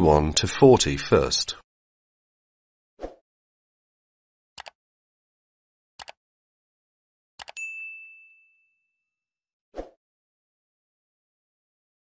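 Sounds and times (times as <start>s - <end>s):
notification bell ding: 7.5s - 9.0s.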